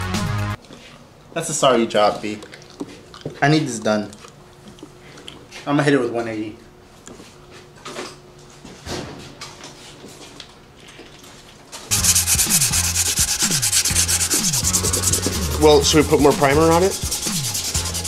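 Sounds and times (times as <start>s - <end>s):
sandpaper scratching: 11.9s - 18.0s.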